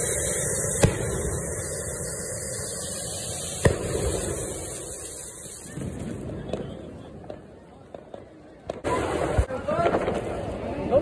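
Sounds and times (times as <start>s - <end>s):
firework bang: 0.0s - 2.8s, 3.4s - 10.4s
firework spark rush: 0.0s - 7.4s.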